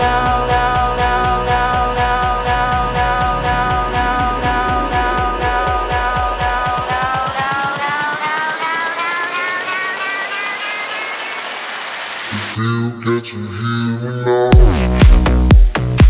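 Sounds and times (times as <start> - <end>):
speeding bass pulse: 0.0 - 10.4
rising synth chord: 0.3 - 12.3.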